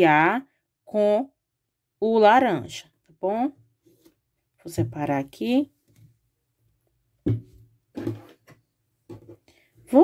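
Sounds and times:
soft knocks on tabletop: 7.2s - 9.4s.

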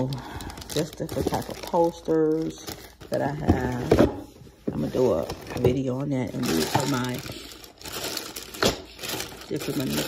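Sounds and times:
plastic bag crinkling: 0.0s - 3.8s, 4.9s - 10.0s.

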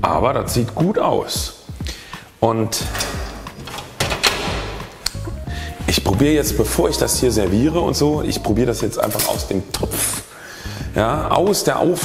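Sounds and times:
kitchen items clattering: 2.8s - 5.0s.

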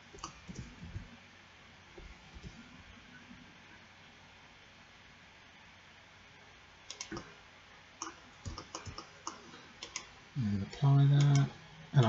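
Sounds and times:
mouse clicks: 6.9s - 7.3s.

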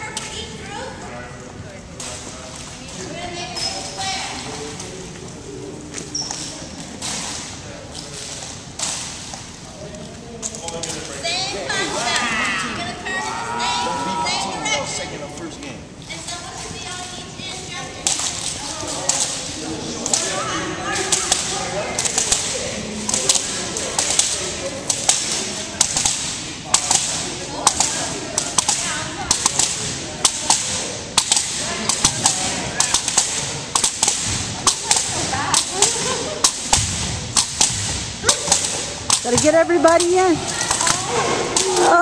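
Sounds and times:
faint voices: 9.4s - 42.0s
jump rope slapping wooden floor: 21.0s - 41.9s.

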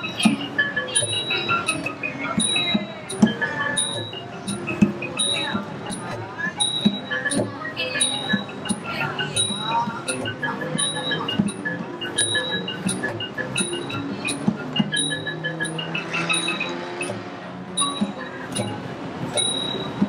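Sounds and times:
xylophone melody: 0.0s - 20.0s.

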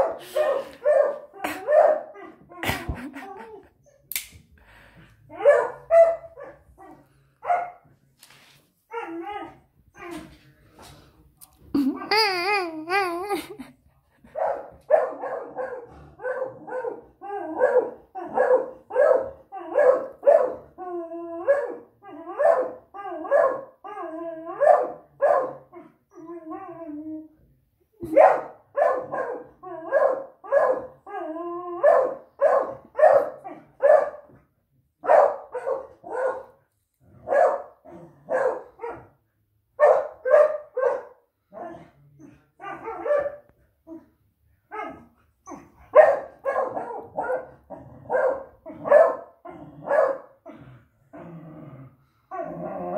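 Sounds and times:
dog barking: 0.0s - 2.2s, 5.4s - 6.6s, 7.4s - 7.8s, 14.4s - 20.6s, 22.4s - 23.7s, 24.6s - 25.7s, 28.1s - 30.9s, 31.8s - 34.3s, 35.0s - 36.6s, 37.2s - 39.2s, 39.8s - 41.8s, 42.6s - 43.5s, 45.9s - 50.4s.

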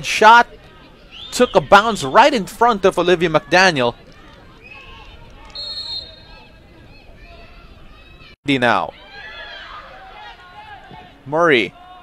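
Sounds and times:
faint voices of players: 0.0s - 12.0s
referee's whistle: 4.6s - 6.4s.

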